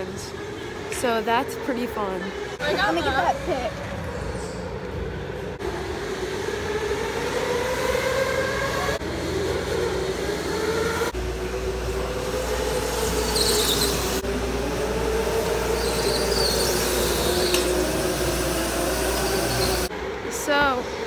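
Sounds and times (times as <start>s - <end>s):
electric go-kart motors whining: 0.0s - 21.0s
tyres squealing: 13.1s - 14.2s, 15.7s - 18.0s.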